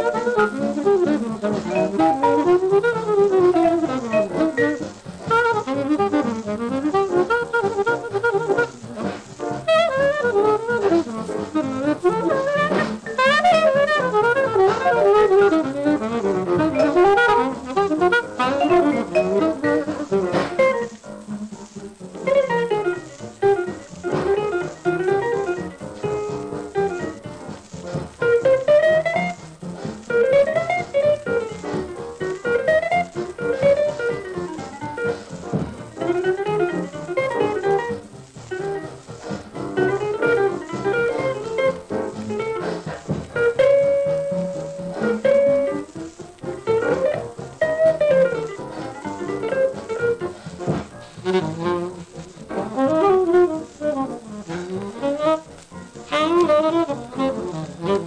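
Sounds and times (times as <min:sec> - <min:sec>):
hot jazz record playing: 0:00.0 - 0:58.0.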